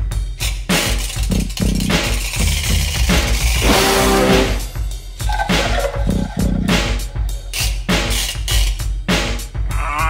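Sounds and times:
rock band playing: 0:01.3 - 0:08.6.

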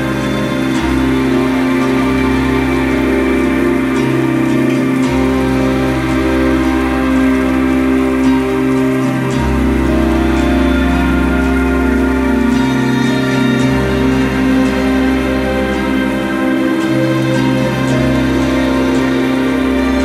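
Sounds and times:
soft background music: 0:00.0 - 0:20.0
steady rain pattering: 0:00.0 - 0:20.0.

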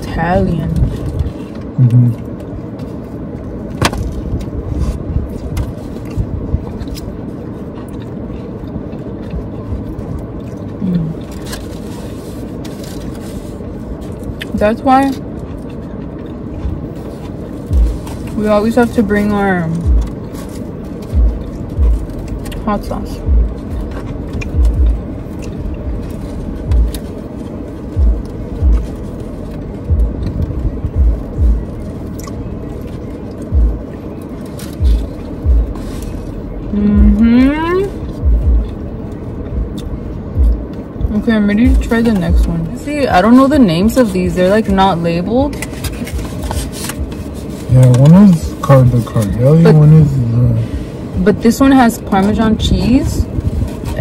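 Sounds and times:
car engine running: 0:00.0 - 0:54.0
short low hum: 0:00.2 - 0:02.4, 0:16.6 - 0:47.0
clicks and scrapes of eating: 0:00.7 - 0:19.0, 0:23.3 - 0:36.4, 0:45.5 - 0:49.4
chewing thumps and clicks: 0:15.2 - 0:18.4, 0:23.2 - 0:36.3.

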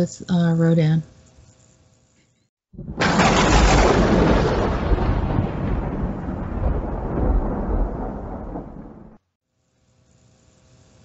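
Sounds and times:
thunder-like rumble: 0:02.8 - 0:09.2.

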